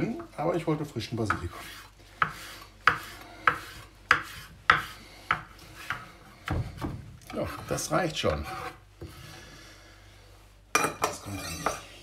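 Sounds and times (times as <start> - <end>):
faint room noise: 0.0 - 12.0
crockery clinking: 10.8 - 11.9.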